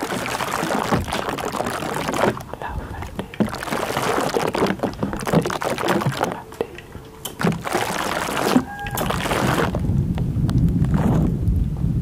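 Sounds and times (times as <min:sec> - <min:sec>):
water spray spattering: 0:00.0 - 0:09.8.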